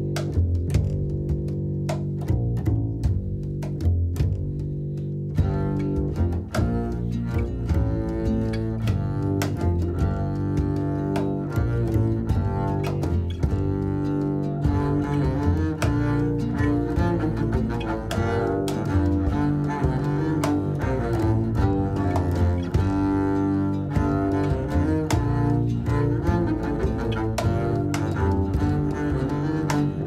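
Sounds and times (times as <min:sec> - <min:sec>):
bowed double bass notes: 0:00.0 - 0:30.0.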